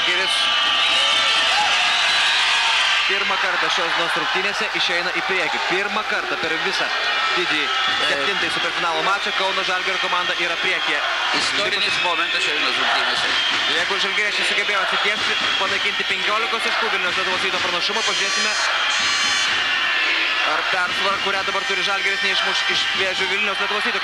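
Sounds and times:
arena crowd noise and voices: 0.0 - 24.0.

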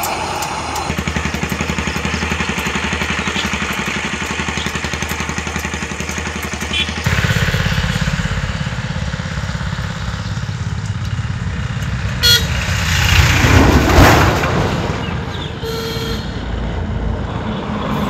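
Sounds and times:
motorcycle engine throbbing: 0.0 - 13.4
short horn toot: 12.2 - 12.6.

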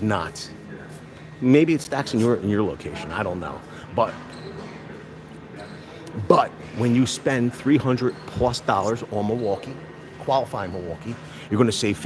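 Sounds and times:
store background hum and hiss: 0.0 - 4.1.

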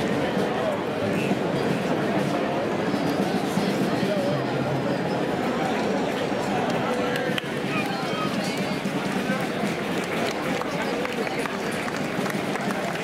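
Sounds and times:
crowd talking: 0.0 - 13.0.

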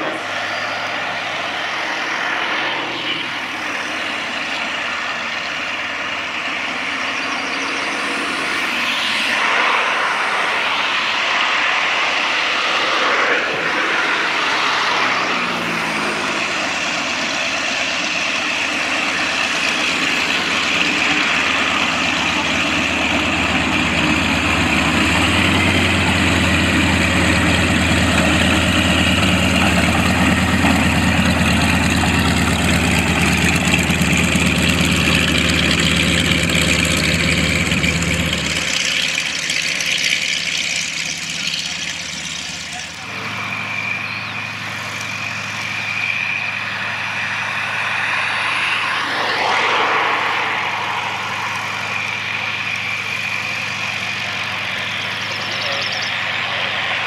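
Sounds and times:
propeller aircraft engine idling: 0.0 - 57.0.

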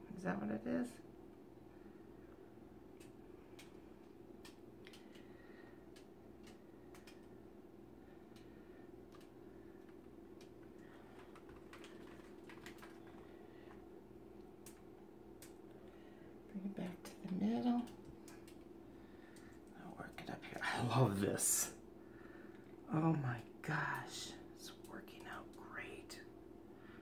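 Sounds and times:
steady low hum: 0.0 - 27.0
faint clicks: 2.9 - 7.4.

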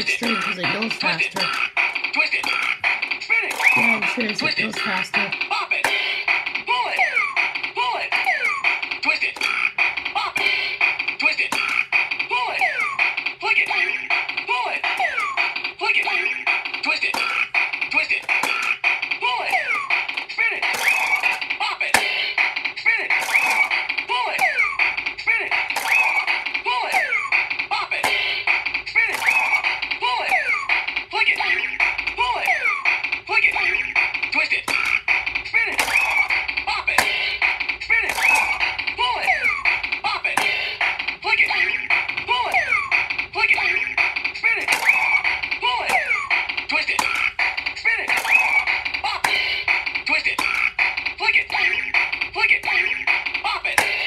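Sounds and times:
toy electronic beat: 0.0 - 54.0
toy spoken commands: 0.0 - 54.0.

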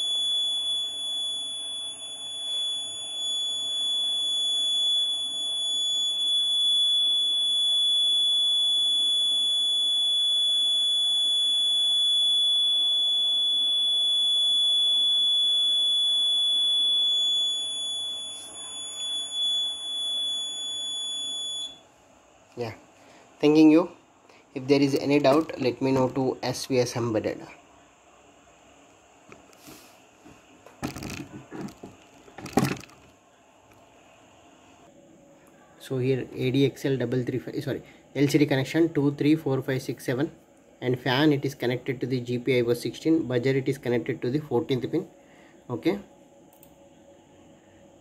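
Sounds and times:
high-pitched alarm buzzer tone: 0.0 - 21.8.

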